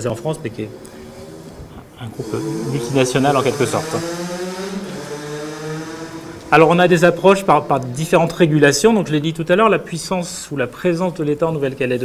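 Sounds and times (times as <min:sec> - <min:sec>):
man's drawn-out hesitation sound: 0:01.7 - 0:04.2, 0:06.4 - 0:10.7.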